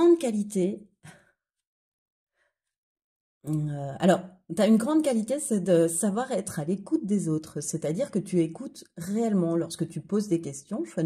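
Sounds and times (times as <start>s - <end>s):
faint breath: 1.0s - 1.4s, 2.3s - 2.7s.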